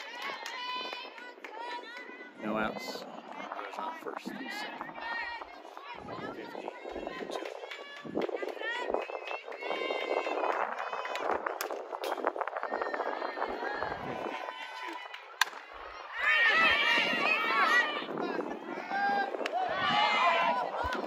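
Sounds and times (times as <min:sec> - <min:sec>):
people talking and calling out: 0:00.0 - 0:21.0
bat cracking a softball: 0:11.0 - 0:12.2, 0:14.3 - 0:15.7.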